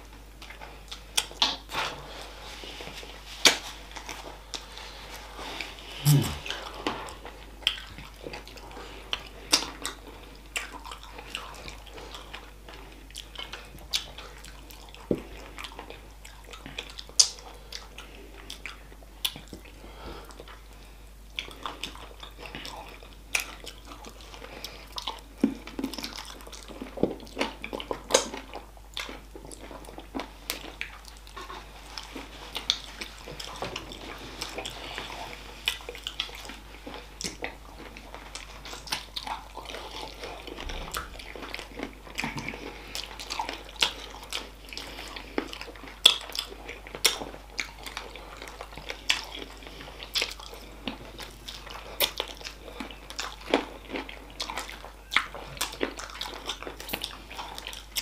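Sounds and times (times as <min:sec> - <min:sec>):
chewing and biting chicken feet: 0:21.4 - 0:58.0.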